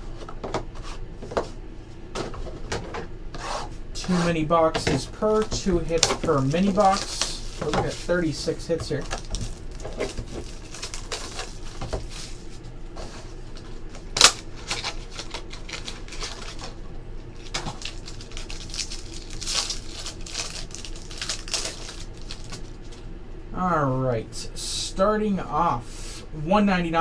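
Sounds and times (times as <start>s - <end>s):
foil pack crinkling and tearing: 5.3s - 12.6s, 13.6s - 23.1s.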